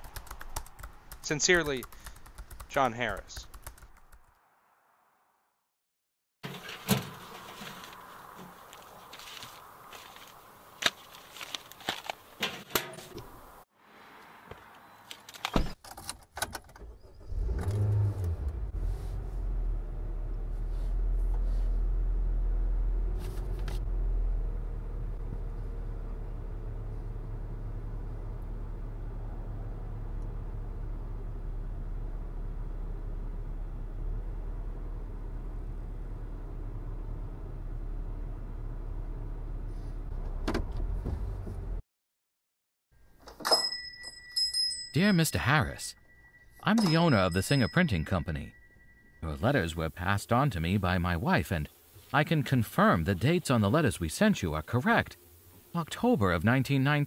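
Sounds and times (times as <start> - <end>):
car engine starting and idling: 16.6 - 41.8
small bell ringing: 43.4 - 49.2
light tinkling: 43.4 - 49.9.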